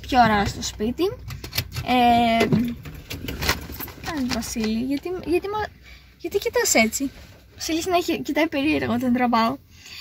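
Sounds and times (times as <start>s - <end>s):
car cabin rumble: 0.0s - 5.7s.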